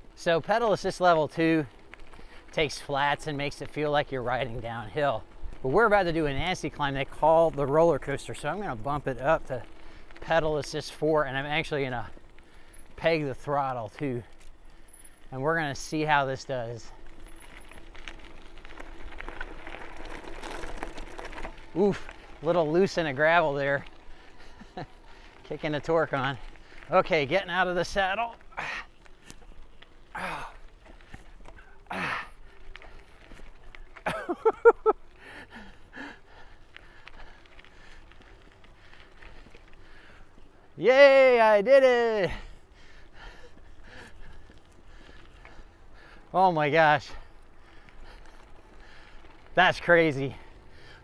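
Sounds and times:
tyres crunching over gravel: 0.0 - 51.0
low wind rumble: 14.2 - 40.8
person breathing hard: 30.1 - 33.2, 35.1 - 40.4, 42.3 - 46.3, 47.2 - 49.5, 50.4 - 51.0.

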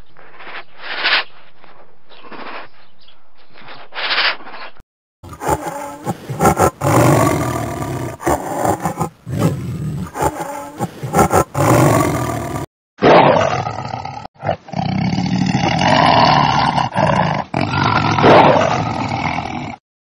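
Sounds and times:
tiger roaring and growling: 5.2 - 19.8.

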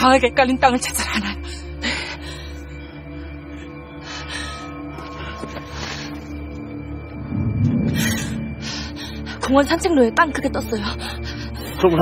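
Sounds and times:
tense drama score tones: 0.0 - 12.0
low rough rumble: 6.6 - 8.8.

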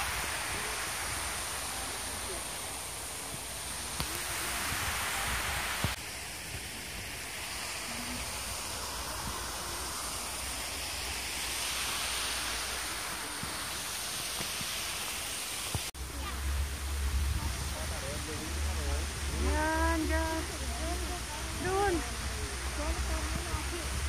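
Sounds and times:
fountain water splashing: 0.0 - 24.0.

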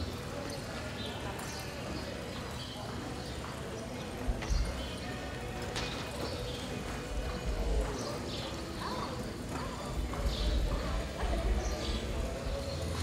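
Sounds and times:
background voices: 0.0 - 13.0
hoofbeats on soft dirt: 0.8 - 13.0.

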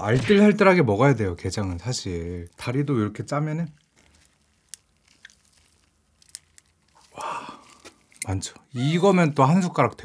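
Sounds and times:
crab meat being squeezed: 3.6 - 8.3.

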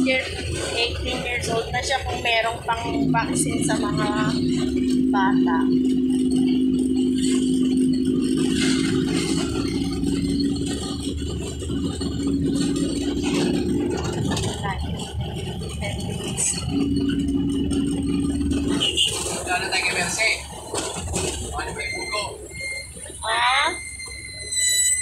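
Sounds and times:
sidecar rattling: 0.0 - 25.0
small motorcycle engine running: 0.0 - 25.0.

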